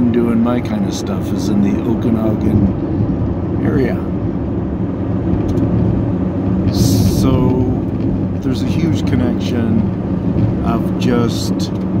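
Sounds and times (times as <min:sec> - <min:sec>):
car engine and tyre rumble: 0:00.0 - 0:12.0.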